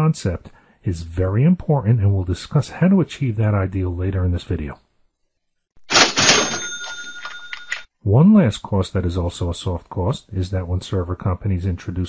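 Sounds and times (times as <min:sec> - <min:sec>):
cash register drawer clatter: 0:05.9 - 0:07.8
cash register bell ringing: 0:05.9 - 0:07.9.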